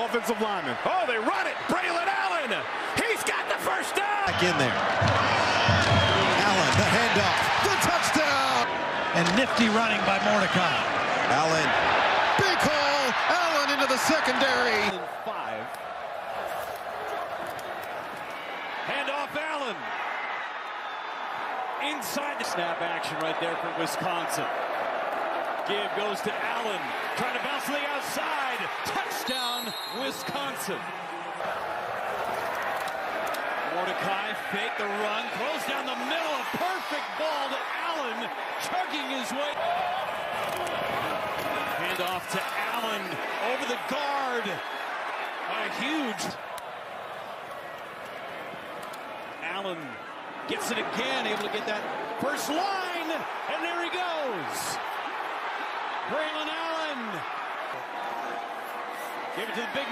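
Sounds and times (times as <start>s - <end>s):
stadium crowd noise: 0.0s - 59.9s
commentator speaking: 12.4s - 15.7s.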